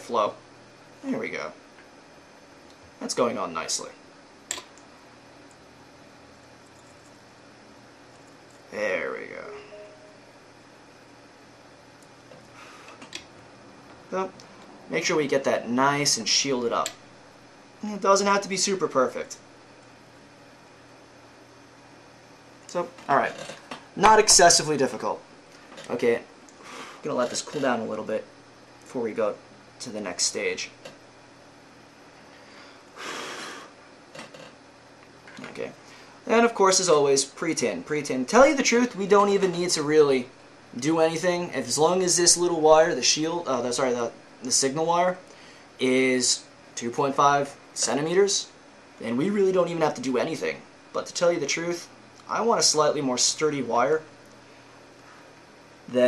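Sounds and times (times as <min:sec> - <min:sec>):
faint room hiss: 0:06.7 - 0:12.8
short breath: 0:32.3 - 0:33.7.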